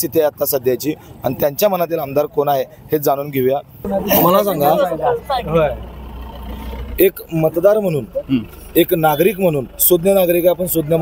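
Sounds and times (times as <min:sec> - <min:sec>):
low steady rumble: 0:03.8 - 0:11.0.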